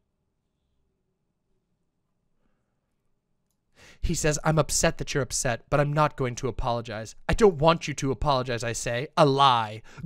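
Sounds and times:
short intake of breath: 3.8 - 4.0.

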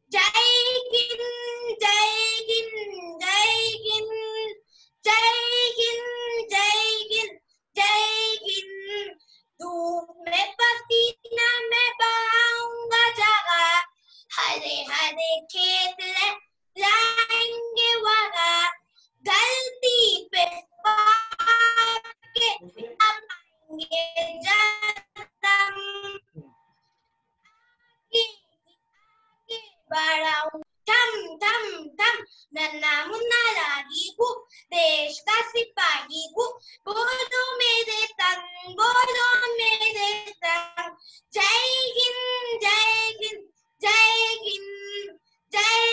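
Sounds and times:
child singing: 0.0 - 26.4, 28.1 - 28.3, 29.5 - 45.9.

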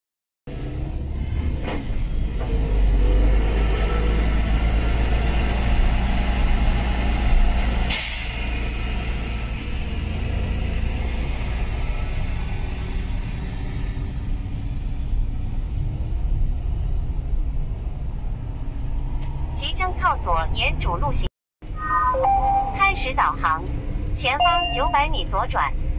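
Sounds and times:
road and engine rumble in car: 0.5 - 25.9.

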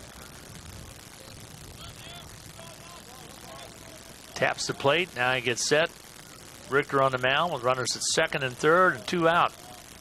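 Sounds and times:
crowd murmur: 0.0 - 7.6, 8.6 - 10.0.

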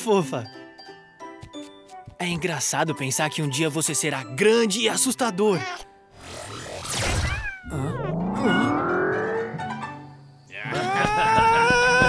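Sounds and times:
cartoon falling swoosh: 6.2 - 10.2
rising pitched sound: 6.2 - 10.4
long startled yell: 10.6 - 12.0.

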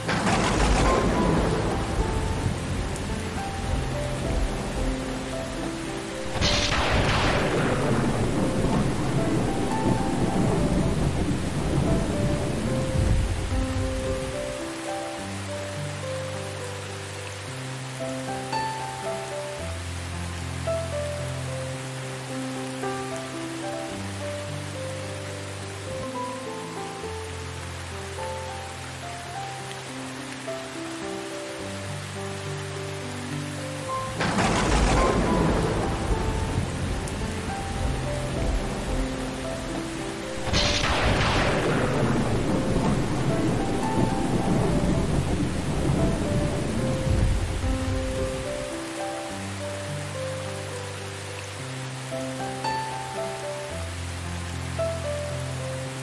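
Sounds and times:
thunder rumbling: 0.0 - 14.6, 33.9 - 48.8
soft instrumental music: 0.0 - 56.0
steady rain: 0.0 - 56.0.

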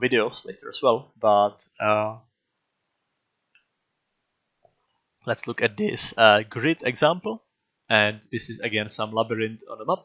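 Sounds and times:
man's voice: 0.0 - 2.2, 5.3 - 10.0.

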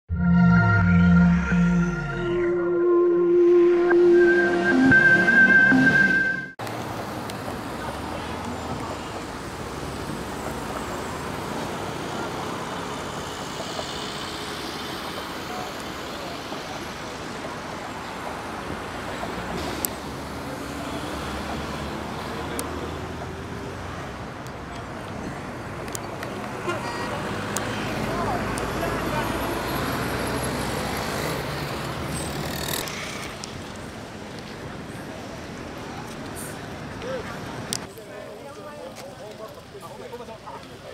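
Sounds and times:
indistinct voices: 0.1 - 6.6
road traffic: 0.1 - 40.9.

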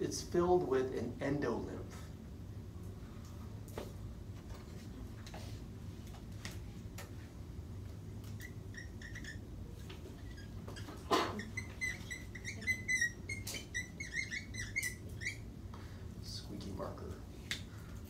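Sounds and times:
marker squeaking on whiteboard: 8.2 - 15.6.

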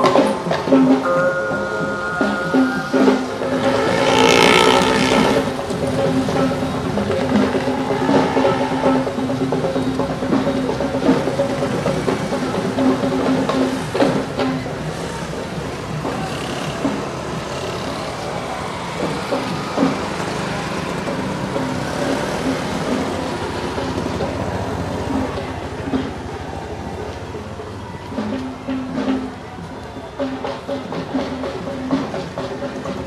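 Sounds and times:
music with drums: 0.0 - 33.0
road traffic passing: 0.0 - 33.0.

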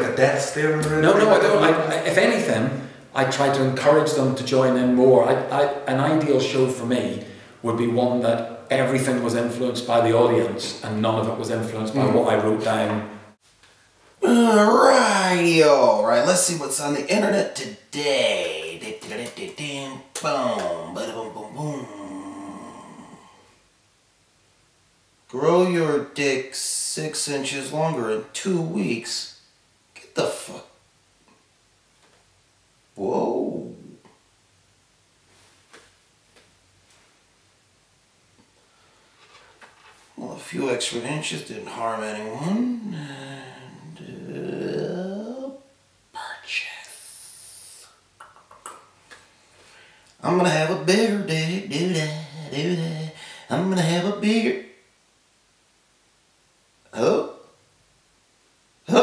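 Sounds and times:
man humming: 14.2 - 15.0, 20.4 - 23.6, 42.4 - 45.6, 51.1 - 53.8.

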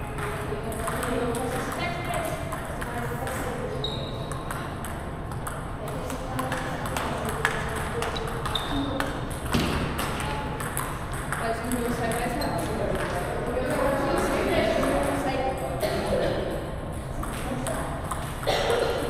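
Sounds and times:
table tennis balls clicking: 0.2 - 13.9, 16.9 - 18.5.

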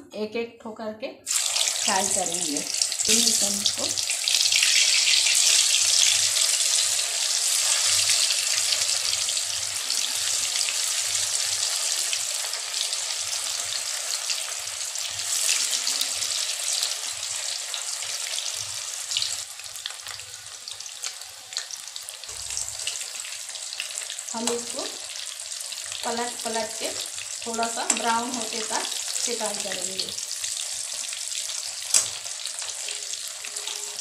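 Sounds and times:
yam pieces deep-frying in oil: 1.2 - 34.0.

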